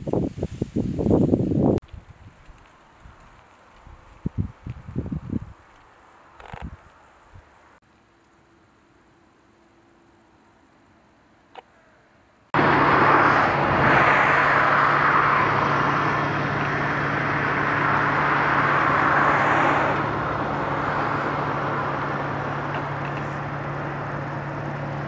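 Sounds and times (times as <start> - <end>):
loud rushing noise: 12.6 - 24.0
low engine hum: 12.6 - 25.0.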